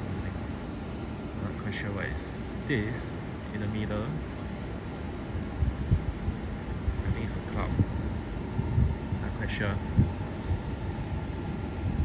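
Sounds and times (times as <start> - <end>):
wind buffeting microphone: 4.5 - 12.0.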